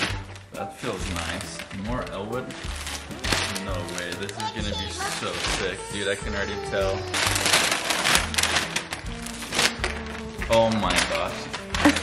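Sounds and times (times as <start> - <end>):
background music: 0.0 - 12.0
plastic packaging crinkling: 0.0 - 12.0.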